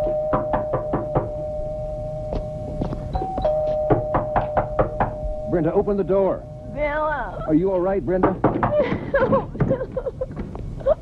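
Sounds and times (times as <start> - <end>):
knocking on a door: 0.0 - 1.3, 3.9 - 5.2, 8.1 - 10.5.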